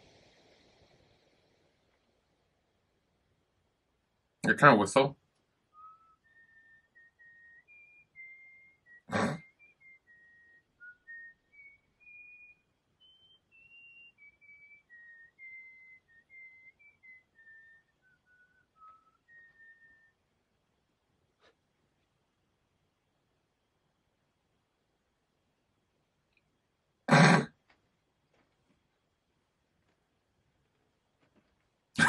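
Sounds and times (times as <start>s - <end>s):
person whistling a tune: 5.7s - 20.2s.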